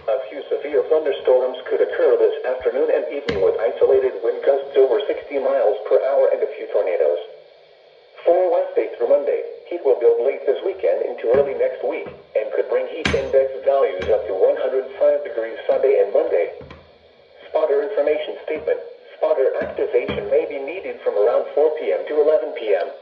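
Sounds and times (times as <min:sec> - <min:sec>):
synthesized voice through small speaker: 0:00.0 - 0:07.3, 0:08.2 - 0:16.7, 0:17.4 - 0:23.0.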